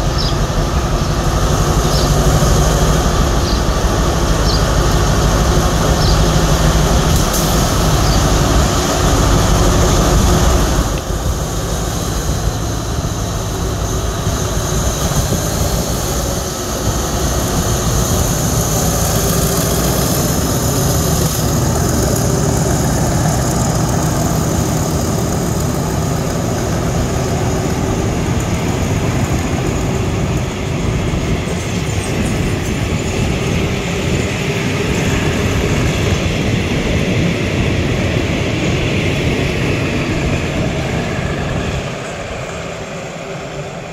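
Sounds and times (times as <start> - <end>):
diesel locomotive engine drone: 0.0 - 43.9
train wheels rolling on rails: 0.0 - 43.9.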